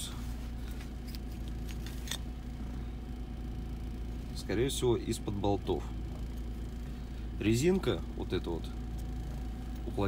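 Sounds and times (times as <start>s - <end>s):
low hum in car cabin: 0.0s - 10.0s.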